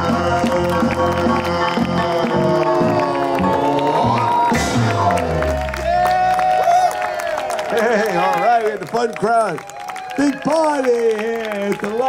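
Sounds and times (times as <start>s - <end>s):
audience cheering and clapping: 0.0s - 12.0s.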